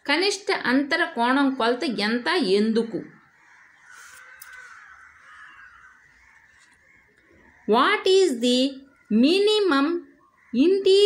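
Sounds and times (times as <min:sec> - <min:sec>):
crow-like bird calls: 0:02.8 - 0:11.0.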